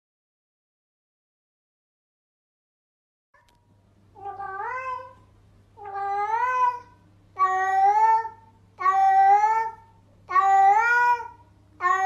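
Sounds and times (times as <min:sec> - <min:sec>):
cat meowing: 0:04.2 - 0:05.2, 0:05.8 - 0:12.0.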